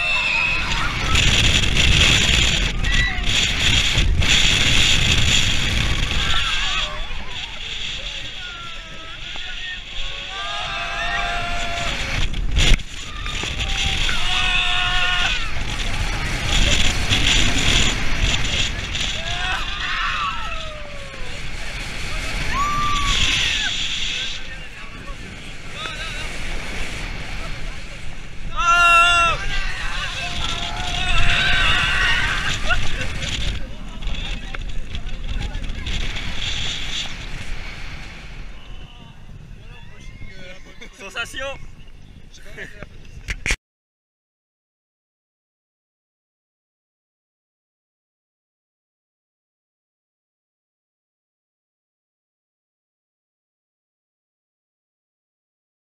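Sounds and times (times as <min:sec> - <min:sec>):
roller coaster rumbling on track: 0:00.0 - 0:43.4
wind rushing over camera: 0:00.0 - 0:43.6
riders yelling: 0:05.8 - 0:12.3, 0:12.9 - 0:16.8, 0:18.9 - 0:24.7, 0:28.4 - 0:34.3.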